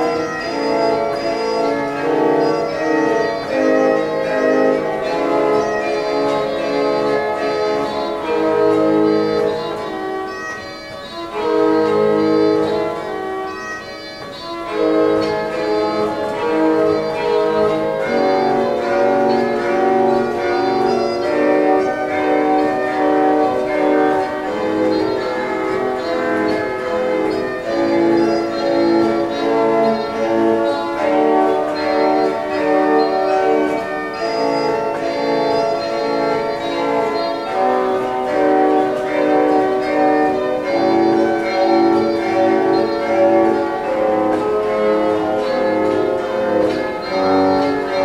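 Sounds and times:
pipe organ playing baroque music: 0.0 - 48.0.

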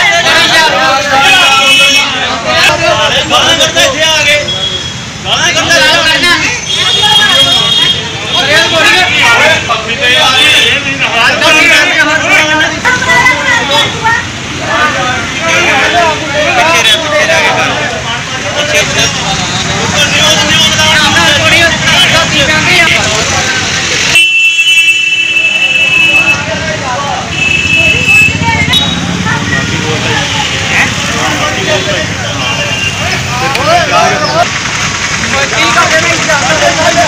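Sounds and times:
men arguing and shouting: 0.0 - 37.0
street traffic: 0.0 - 37.0
vehicle horn: 24.1 - 26.5, 27.3 - 29.1.

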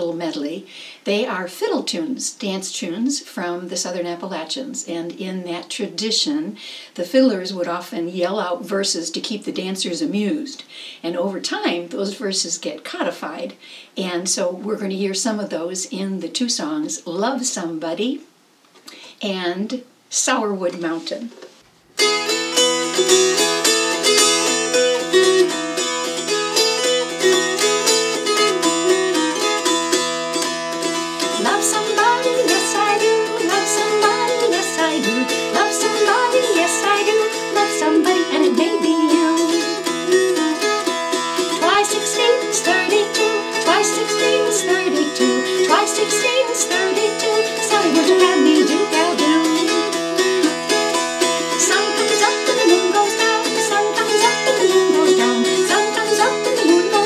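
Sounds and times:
dulcimer strumming fiddle tune: 22.0 - 57.0.

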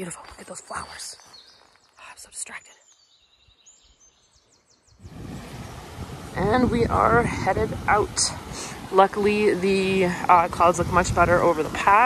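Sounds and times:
wind on microphone: 4.9 - 12.0.

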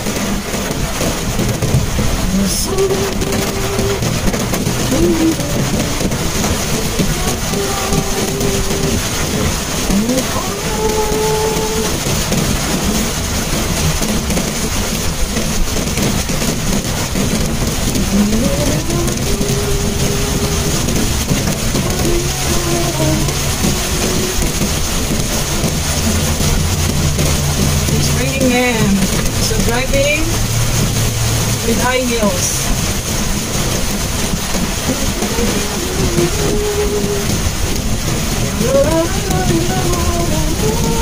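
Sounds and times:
car driving on wet road: 0.0 - 41.0
engine low hum: 0.0 - 41.0
rain on car roof: 0.0 - 41.0.

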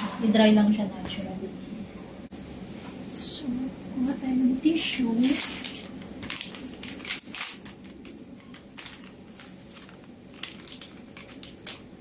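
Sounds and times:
paper tissue crumpling: 4.8 - 12.0.

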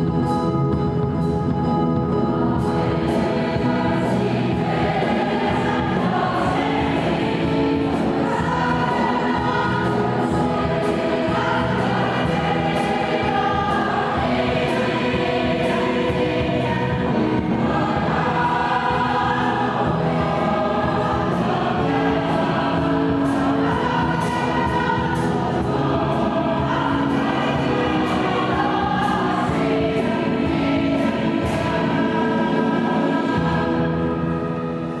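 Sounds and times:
mixed choir singing: 2.4 - 35.0.

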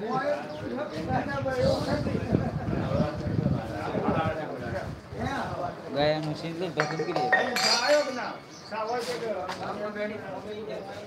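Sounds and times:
men talking: 0.0 - 11.0
metal or glass clinks: 6.8 - 8.6.

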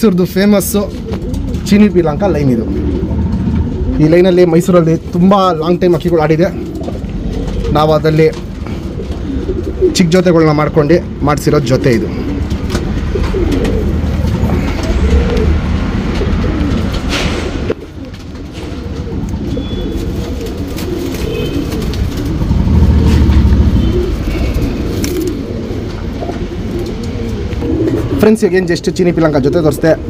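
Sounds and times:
pigeons cooing: 0.1 - 30.0.

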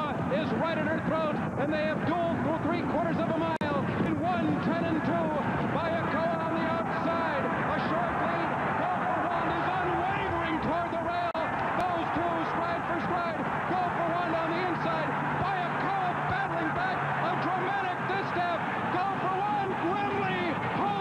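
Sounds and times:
crowd cheering and shouting: 0.0 - 21.0.

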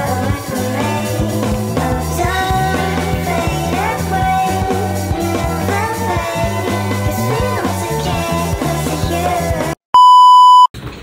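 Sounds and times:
rock music with singing: 0.0 - 9.8
loud electronic beep: 10.0 - 10.7.

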